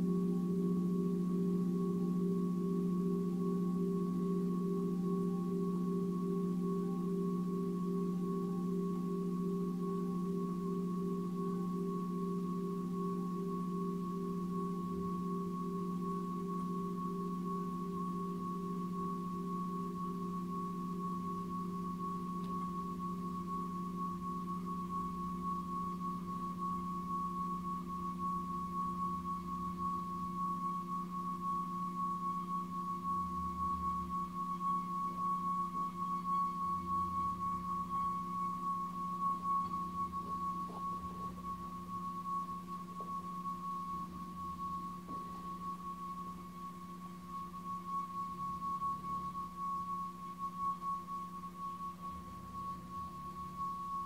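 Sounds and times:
metal singing bowl ringing: 0.0s - 54.0s.

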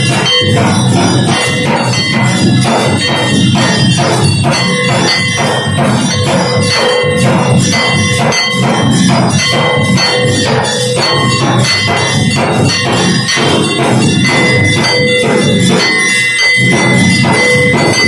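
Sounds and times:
fast percussion beat: 0.0s - 18.0s
hand bell ringing: 0.0s - 18.0s.

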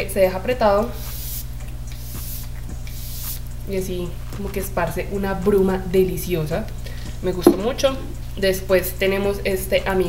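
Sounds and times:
spray bottle mist hissing: 1.0s - 3.5s.

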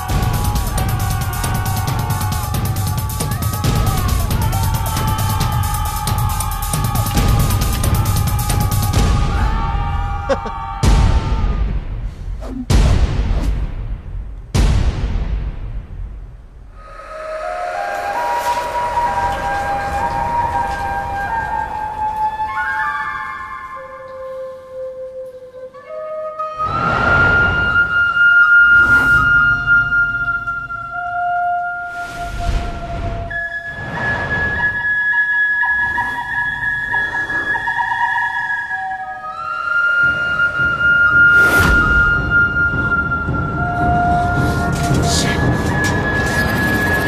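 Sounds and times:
bamboo flute melody: 0.0s - 11.7s, 16.8s - 47.0s
dramatic score: 0.0s - 47.0s.

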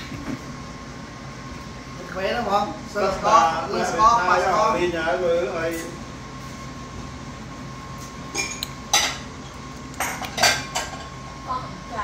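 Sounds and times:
dishes and utensils clinking: 8.3s - 9.3s, 10.0s - 11.1s.

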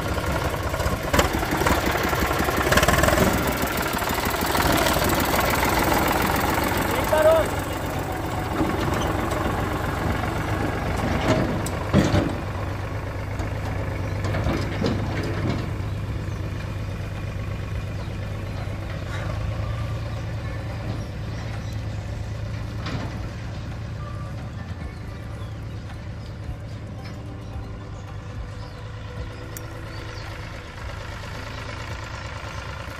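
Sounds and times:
tractor diesel engine running: 0.0s - 32.9s.

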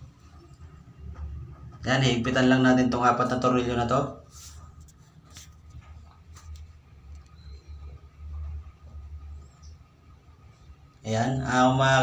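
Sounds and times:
faint squeaks: 7.2s - 10.7s.

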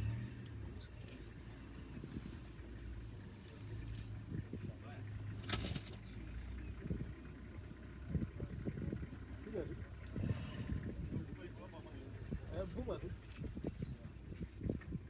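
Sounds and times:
vehicle engine idling: 0.0s - 15.0s.

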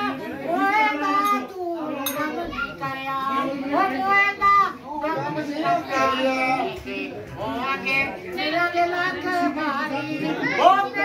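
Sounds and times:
voices singing devotional song: 0.0s - 11.0s.

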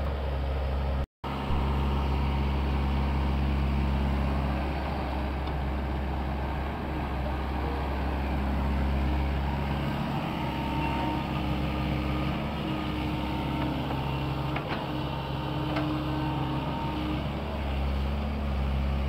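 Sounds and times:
excavator diesel engine running: 0.0s - 19.0s
hydraulic whining tones: 8.2s - 18.0s.

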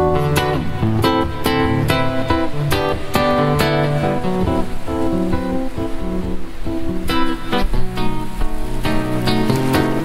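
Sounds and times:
solo classical guitar: 0.0s - 10.0s.

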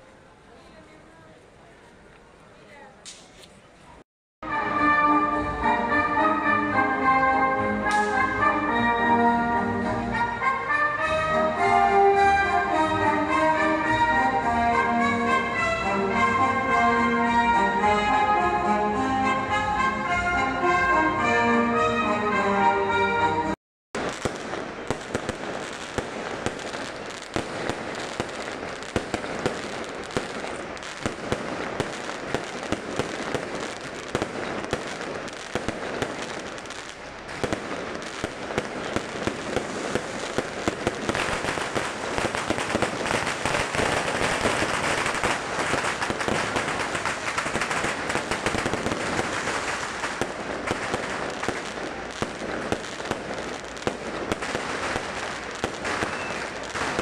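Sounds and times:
fireworks crackling: 4.5s - 19.3s, 24.0s - 57.0s
fireworks bangs: 24.0s - 57.0s.

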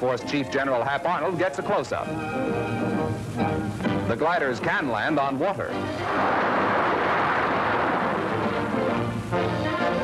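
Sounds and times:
water splashing: 6.1s - 8.9s.

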